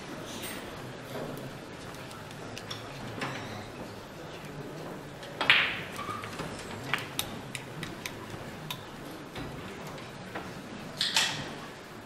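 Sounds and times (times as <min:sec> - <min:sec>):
snooker balls clicking together: 0:05.2 - 0:11.2.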